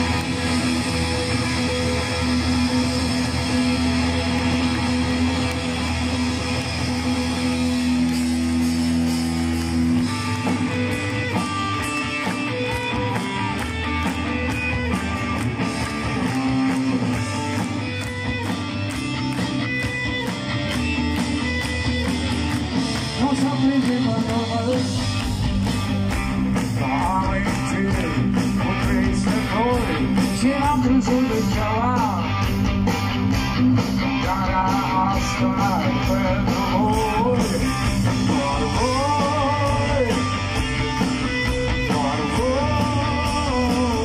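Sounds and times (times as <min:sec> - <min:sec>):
drums playing steady beat: 0:00.0 - 0:44.0.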